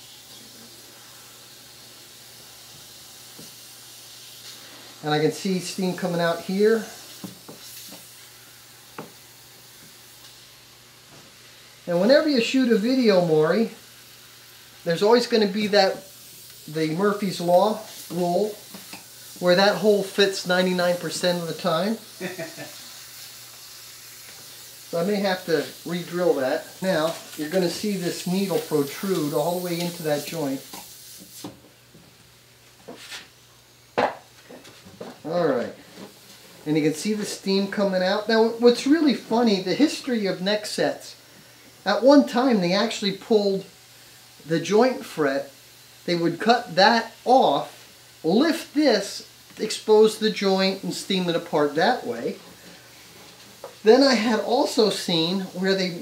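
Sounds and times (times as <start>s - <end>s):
steam hissing through needle: 0.0s - 56.0s.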